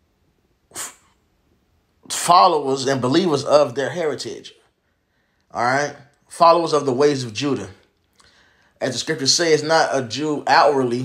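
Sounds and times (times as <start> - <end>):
quick intake of breath: 0.7 - 1.3, 8.2 - 8.8.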